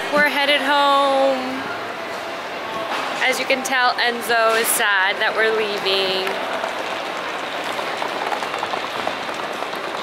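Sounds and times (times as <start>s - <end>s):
stroller wheels rolling on tiles: 3.3s - 10.0s.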